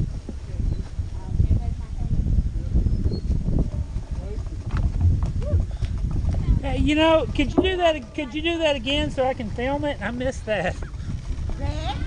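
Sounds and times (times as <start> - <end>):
wooden planks knocking and rattling: 4.0 - 6.7, 7.3 - 8.1.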